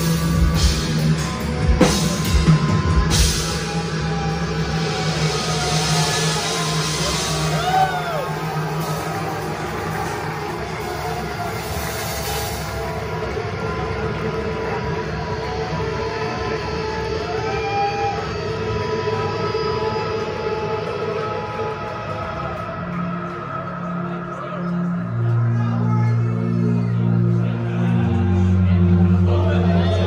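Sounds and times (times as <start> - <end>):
dark ambient drone: 0.0 - 30.0.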